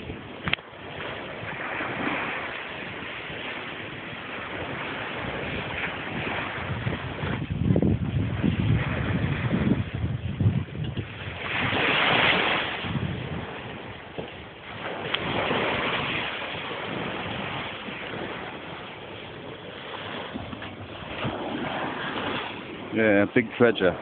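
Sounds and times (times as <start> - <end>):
surf breaking on beach: 0.0 - 24.0
wind buffeting microphone: 0.0 - 24.0.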